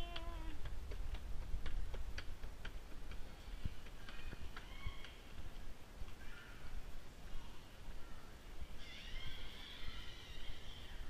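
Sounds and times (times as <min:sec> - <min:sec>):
faint distant voices: 0:03.2 - 0:11.0.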